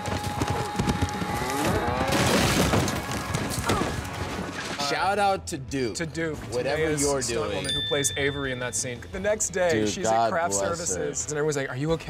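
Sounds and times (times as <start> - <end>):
hooves thudding on dirt: 0.0 - 4.5.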